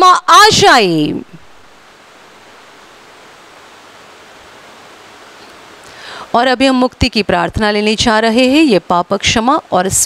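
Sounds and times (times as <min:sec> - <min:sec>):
woman speaking: 0:00.0 - 0:01.4, 0:06.3 - 0:10.0
steady hiss: 0:00.0 - 0:10.0.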